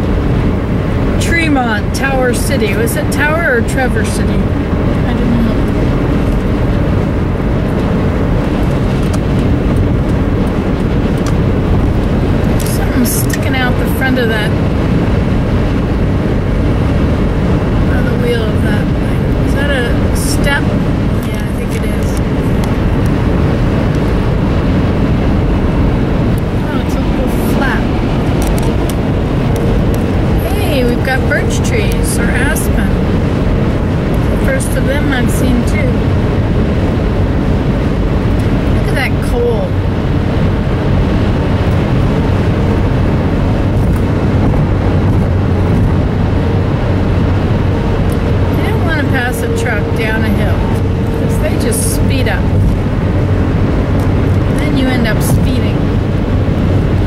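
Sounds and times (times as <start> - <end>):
car road and engine noise: 0.0 - 57.0.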